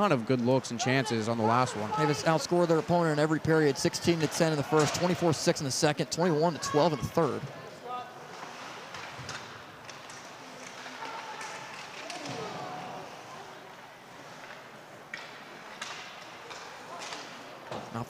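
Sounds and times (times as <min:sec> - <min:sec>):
skates scraping ice: 0:00.3 - 0:17.9.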